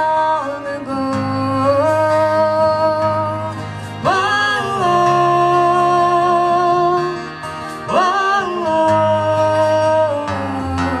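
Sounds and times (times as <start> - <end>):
acoustic guitars: 0.0 - 11.0.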